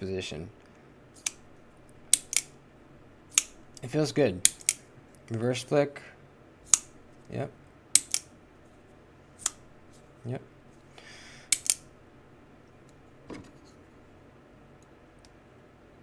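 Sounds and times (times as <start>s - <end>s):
folding knife clicking open and shut: 2.1s - 2.5s, 3.3s - 3.6s, 4.4s - 4.8s, 8.0s - 8.3s, 11.5s - 11.9s.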